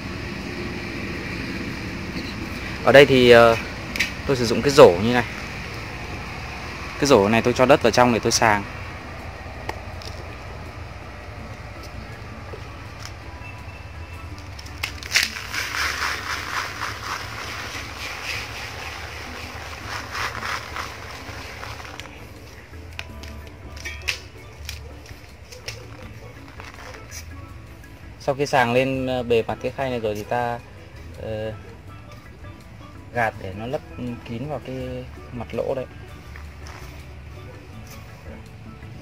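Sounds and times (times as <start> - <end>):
faint background music: 0.0 - 39.0
soil sifting through mesh basket: 14.3 - 22.3, 25.0 - 27.3.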